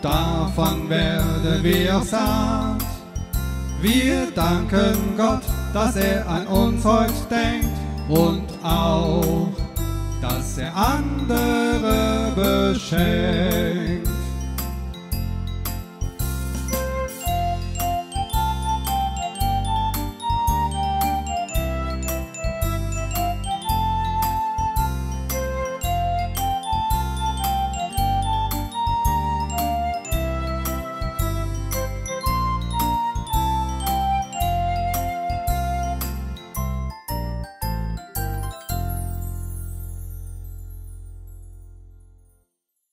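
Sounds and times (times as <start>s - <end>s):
bass line: 0.0s - 41.9s
keyboard melody notes: 0.0s - 42.0s.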